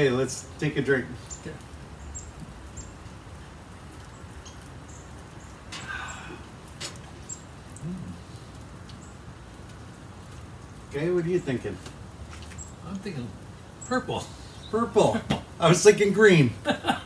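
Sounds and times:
breathy sound: 5.8s - 6.6s
person humming low mm: 7.8s - 8.2s.

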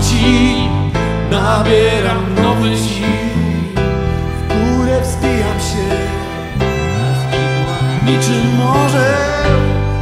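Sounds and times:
bowed violin: 0.0s - 10.0s
guitar playing held notes: 3.1s - 10.0s.

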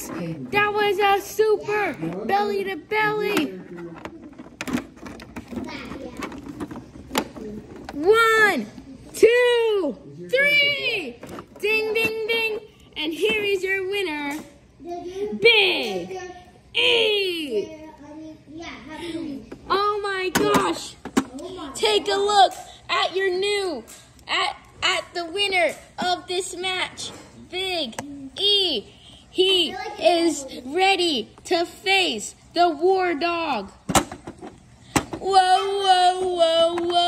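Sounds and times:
plastic toy figures tapping and clicking: 3.2s - 8.1s, 36.6s - 37.0s.

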